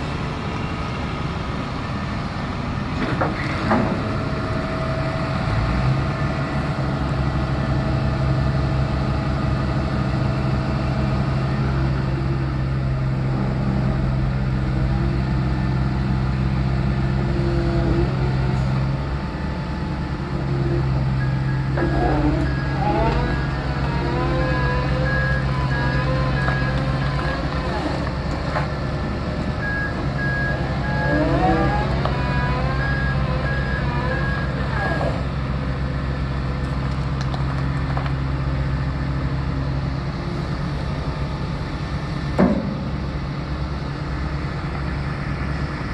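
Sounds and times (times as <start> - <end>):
diesel engine running: 0.0 - 45.9.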